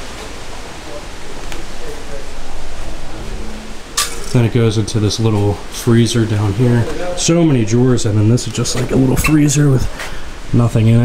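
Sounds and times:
low rumble: 0.0s - 6.7s
steady hiss: 0.0s - 11.0s.

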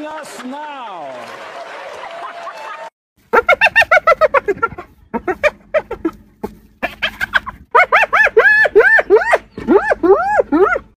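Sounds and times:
hyena giggling yelps: 3.3s - 6.2s, 6.8s - 11.0s.

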